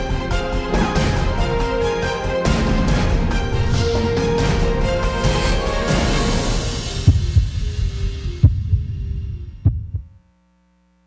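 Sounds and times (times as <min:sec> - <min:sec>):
television ident music: 0:00.0 - 0:10.1
deep low hits: 0:02.6 - 0:10.2.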